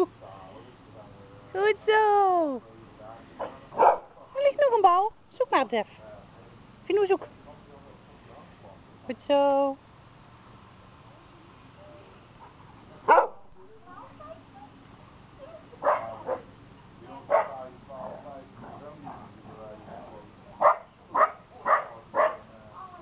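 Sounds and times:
dog barking: 3.4s - 4.2s, 13.1s - 13.5s, 15.8s - 16.5s, 17.3s - 17.7s, 20.6s - 22.5s.

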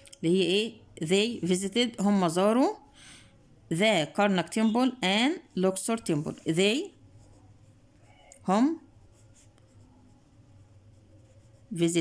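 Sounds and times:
pen scratching on paper: 5.9s - 8.2s, 9.0s - 12.0s.

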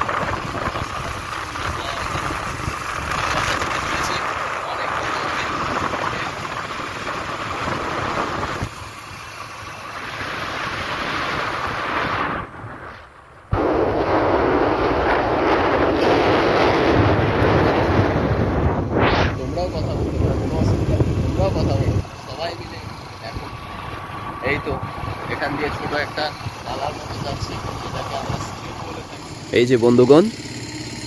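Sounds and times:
wind rushing over microphone: 0.0s - 29.2s
motorcycle road noise: 0.0s - 31.0s.

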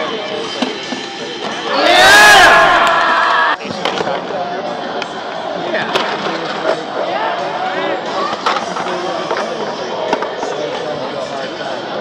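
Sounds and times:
crowd whooping and yelling: 1.7s - 3.6s.

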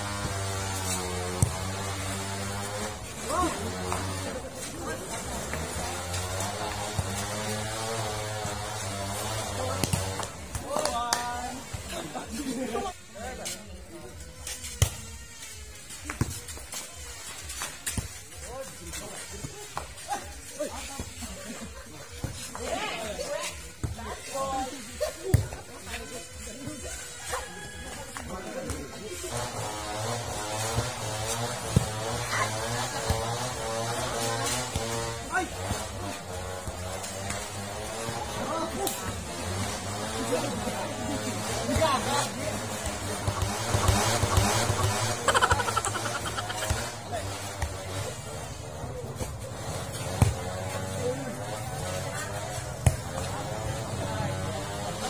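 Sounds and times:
players shouting and chatting: 0.0s - 55.0s
volleyball being hit: 42.7s - 46.9s.

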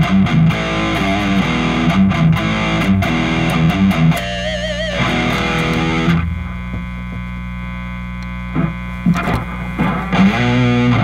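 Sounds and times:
guitar string and pick noises: 0.0s - 7.5s, 8.1s - 11.0s
electric guitar chord: 0.0s - 11.0s
guitar amplifier hum and buzz: 0.0s - 11.0s.

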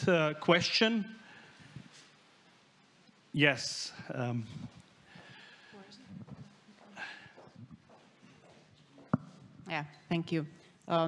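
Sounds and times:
footsteps in aisle: 4.6s - 9.6s.

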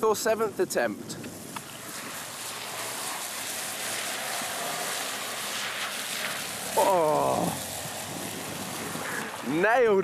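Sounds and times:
tyres hissing on wet surface: 0.2s - 10.0s
faint car engine: 1.1s - 10.0s.

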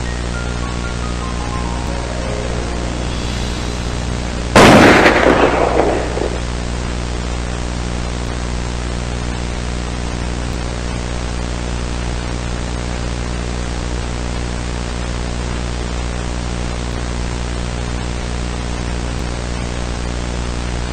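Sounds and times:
low buzzing hum: 0.0s - 15.5s
tape hiss: 0.0s - 20.9s.

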